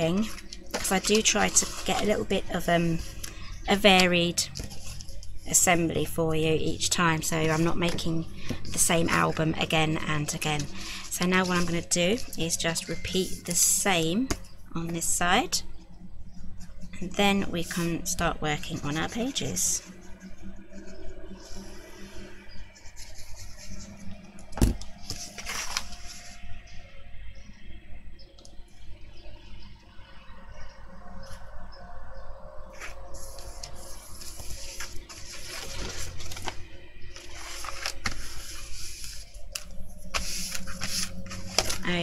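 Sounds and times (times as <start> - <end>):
card rustling and scraping: 0.1 - 6.2, 7.2 - 13.6, 18.6 - 26.5, 32.7 - 42.0.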